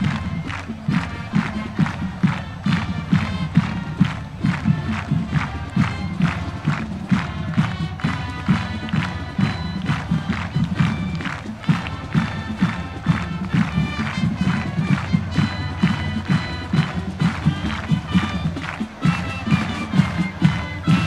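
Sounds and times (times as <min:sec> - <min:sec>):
brass chords: 0:00.0 - 0:21.0
marching drums beat: 0:00.0 - 0:21.0.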